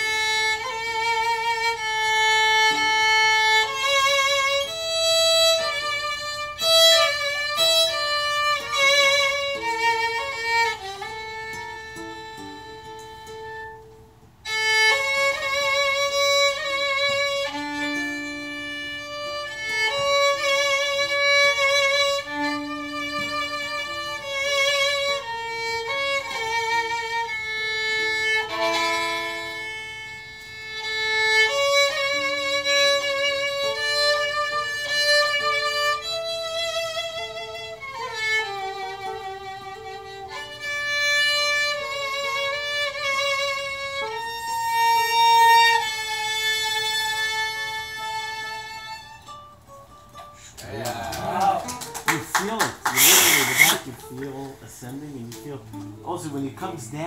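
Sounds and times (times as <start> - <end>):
violin melody with vibrato: 0.0 - 57.0.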